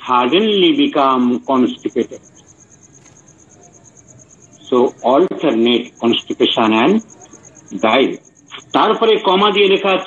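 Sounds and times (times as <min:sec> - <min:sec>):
insect chirping: 0:00.0 - 0:10.0
low background hiss: 0:00.0 - 0:10.0.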